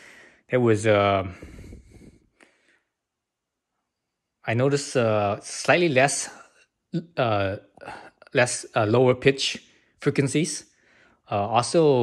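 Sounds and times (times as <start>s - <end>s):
man saying uh: 0.5s - 1.6s, 4.5s - 6.4s, 7.0s - 10.6s, 11.3s - 12.0s.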